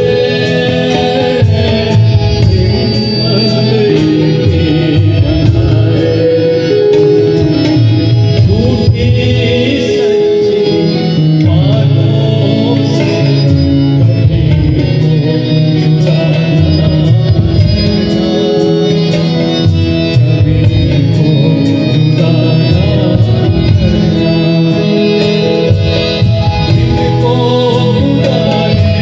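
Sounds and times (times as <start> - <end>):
electronic keyboard: 0.0 - 29.0
harmonium sustained tones: 0.0 - 29.0.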